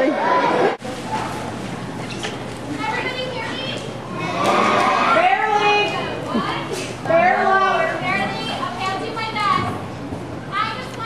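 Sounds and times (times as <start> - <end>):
children chattering and calling out: 2.7 - 11.0.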